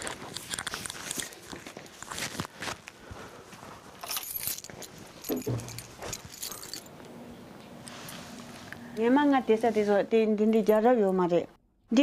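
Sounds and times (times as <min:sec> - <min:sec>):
footsteps: 0:01.2 - 0:06.9
metal items jingling: 0:04.0 - 0:06.9.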